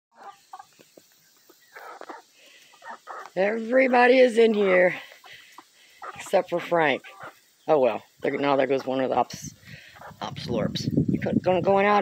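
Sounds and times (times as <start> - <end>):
chickens clucking: 0.1 - 12.0.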